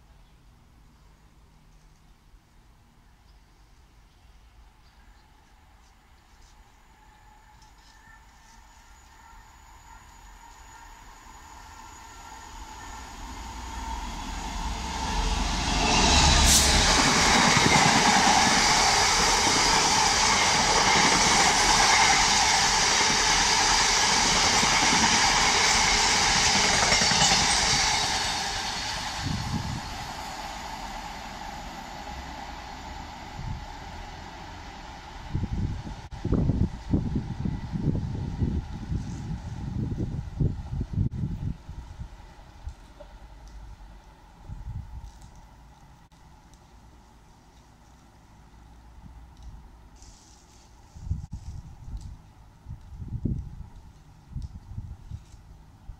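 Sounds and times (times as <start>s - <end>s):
diesel freight train passing: 6.8s - 45.8s.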